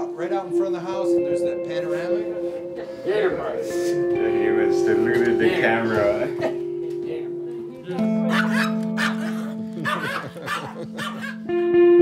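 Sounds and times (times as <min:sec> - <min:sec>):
background guitar music: 0:00.0 - 0:12.0
small dog yapping: 0:08.3 - 0:11.4.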